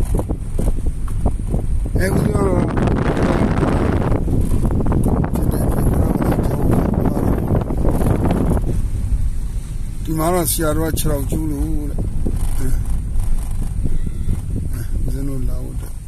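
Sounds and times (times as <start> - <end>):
car road rumble: 0.0 - 16.0
rough rattling over road: 0.0 - 16.0.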